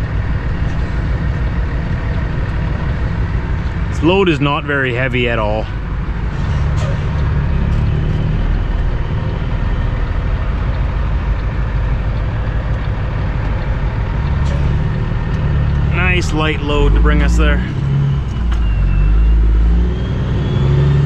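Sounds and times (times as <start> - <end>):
diesel truck engine drone: 0.0 - 21.0.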